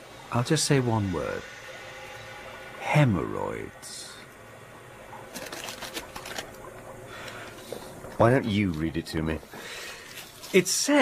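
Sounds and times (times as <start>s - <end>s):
parchment rustling: 5.3s - 10.9s.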